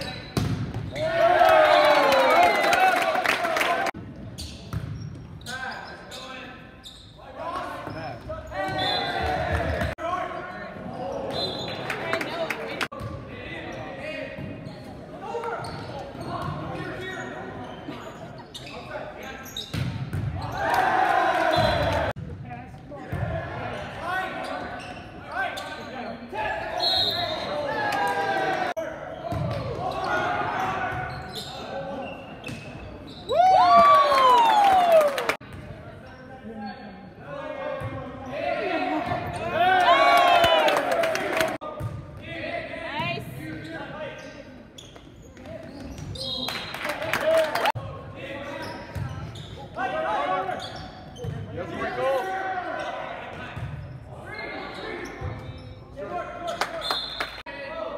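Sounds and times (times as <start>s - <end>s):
players and spectators shouting: 0.9s - 4.0s, 8.5s - 10.0s, 20.4s - 22.1s, 38.3s - 41.6s.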